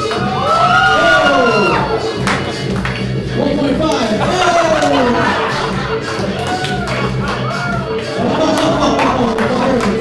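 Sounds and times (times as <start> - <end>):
crowd cheering and whooping: 0.0 - 2.1, 6.2 - 8.0
loud music: 0.0 - 10.0.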